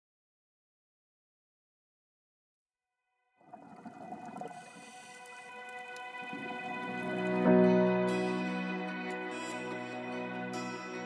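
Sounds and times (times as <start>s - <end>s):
ambient synth music: 3.9s - 11.0s.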